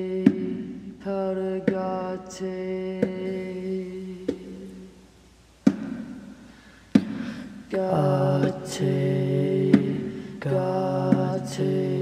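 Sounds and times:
hand strikes on bongo drum: 0:00.1 - 0:00.8, 0:01.6 - 0:01.9, 0:03.0 - 0:03.3, 0:05.6 - 0:06.2, 0:06.9 - 0:07.3, 0:09.6 - 0:10.2.

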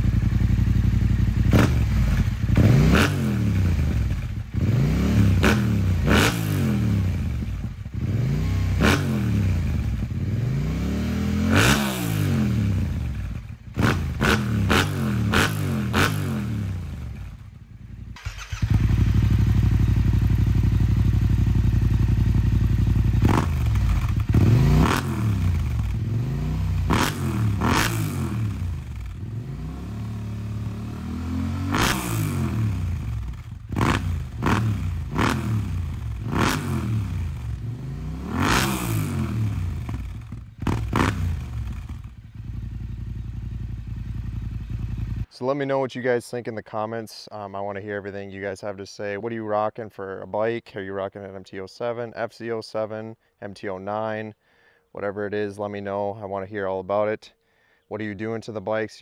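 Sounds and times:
motorcycle engine revving: 0:00.0 - 0:45.3.

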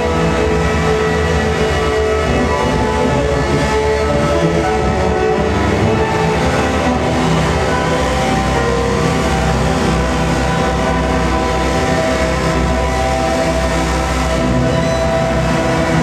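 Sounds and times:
loud live music with held chords: 0:00.0 - 0:16.0
steady low drone: 0:00.0 - 0:16.0.

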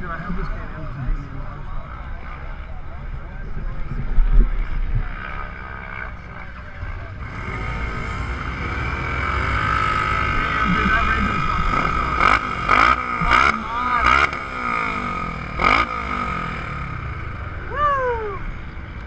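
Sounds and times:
engines idling: 0:00.0 - 0:19.0.

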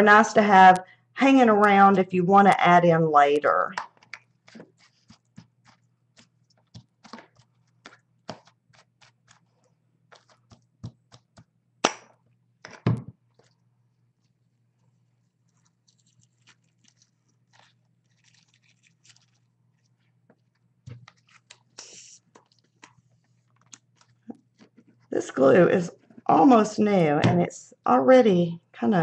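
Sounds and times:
ribbon and paper rustling: 0:15.4 - 0:25.0.

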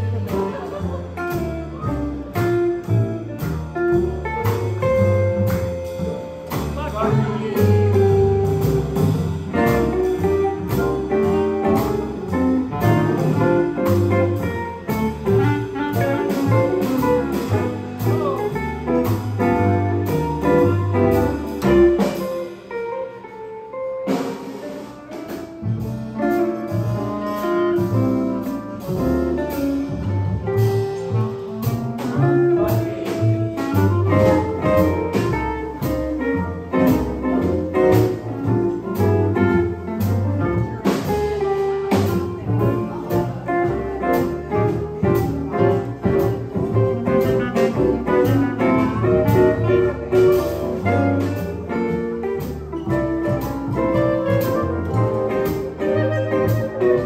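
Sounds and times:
steady cymbal beat: 0:00.0 - 0:23.0, 0:23.9 - 0:57.0
small jazz combo playing: 0:00.0 - 0:57.0.

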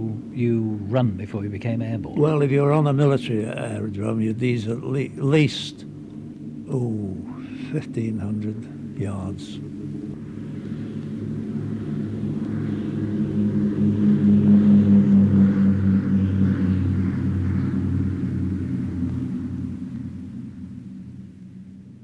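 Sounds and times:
propeller aircraft engines droning: 0:00.0 - 0:22.0.

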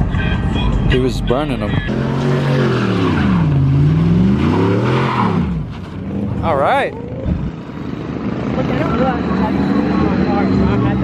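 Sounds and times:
truck engine revving hard: 0:01.3 - 0:11.0
tires squealing on pavement: 0:01.9 - 0:06.9.

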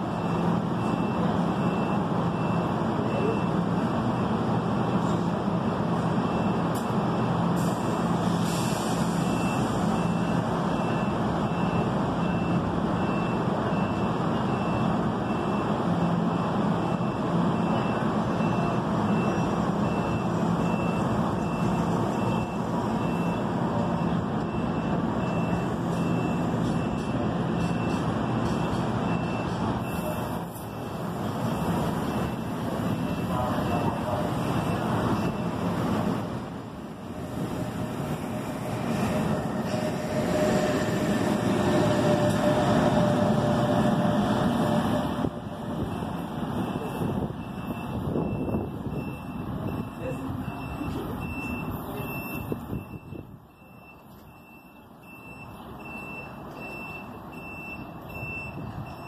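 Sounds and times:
train hum and whir: 0:00.0 - 0:59.0.

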